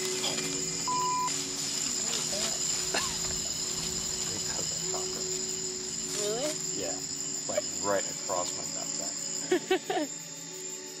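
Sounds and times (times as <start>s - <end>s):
crickets trilling: 0.0s - 11.0s
rising and falling insect calls: 0.0s - 11.0s.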